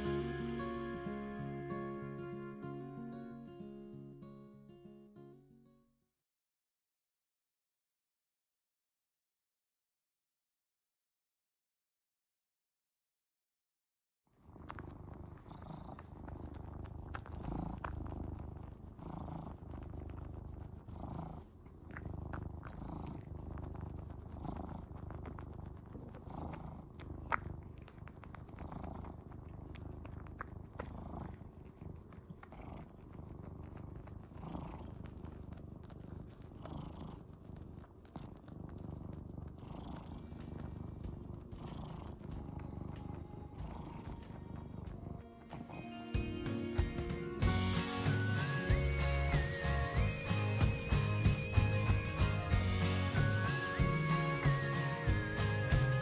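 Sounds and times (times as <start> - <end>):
cat purring: 14.4 - 56.0.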